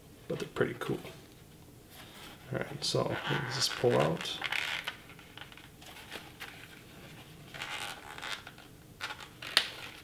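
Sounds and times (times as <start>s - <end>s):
plastic parts rubbing: 2.0s - 10.0s.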